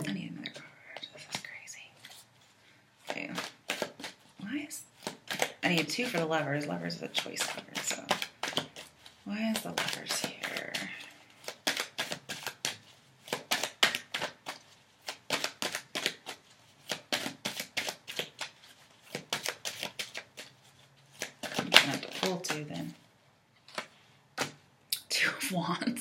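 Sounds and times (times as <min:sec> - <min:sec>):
cards being shuffled: 0:00.4 - 0:02.4, 0:03.0 - 0:24.6.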